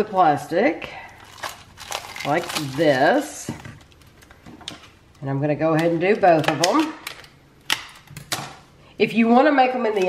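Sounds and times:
scissors snipping plastic film: 0:01.3 - 0:03.2, 0:05.8 - 0:08.6.

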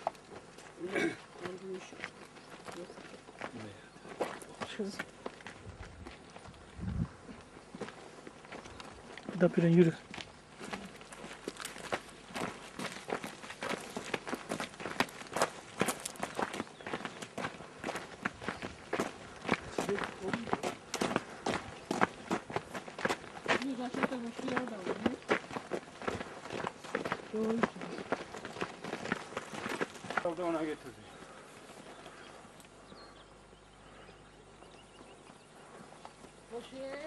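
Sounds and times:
footsteps on forest trail: 0:00.0 - 0:37.0.

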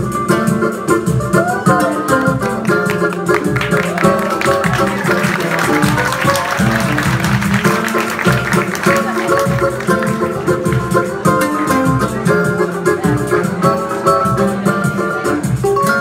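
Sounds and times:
acoustic guitar with bass runs: 0:00.0 - 0:16.0
hand drum steady beat: 0:00.0 - 0:16.0.

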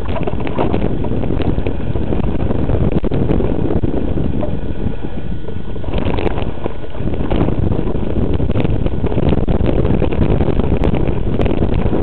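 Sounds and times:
bike rattling over dirt: 0:00.0 - 0:04.6
wind buffeting microphone: 0:00.0 - 0:12.0.

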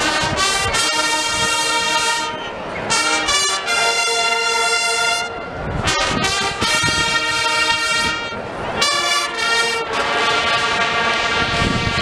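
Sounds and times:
marching band brass chords: 0:00.0 - 0:12.0.

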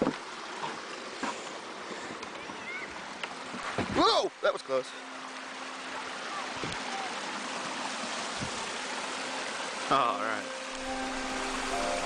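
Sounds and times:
creek water rushing over rocks: 0:00.0 - 0:12.0.

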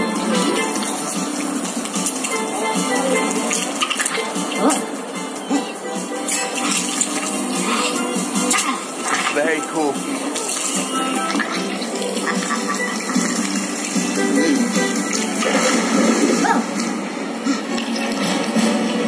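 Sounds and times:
music over speakers: 0:00.0 - 0:09.0, 0:09.7 - 0:16.7
cartoon water swishing effects: 0:10.4 - 0:18.8.

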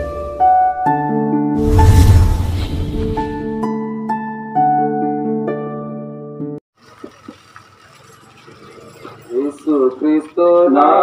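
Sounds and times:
faint outdoor background noise: 0:06.8 - 0:11.0.

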